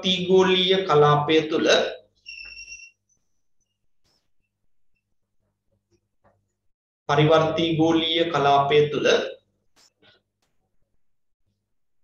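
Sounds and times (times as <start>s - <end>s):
high whistle-like tone: 2.2s - 3.8s
faint high chirps: 2.2s - 5.1s.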